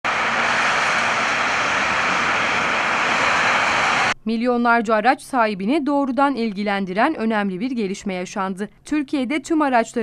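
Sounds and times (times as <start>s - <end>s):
motorway traffic roar: 0.0s - 4.2s.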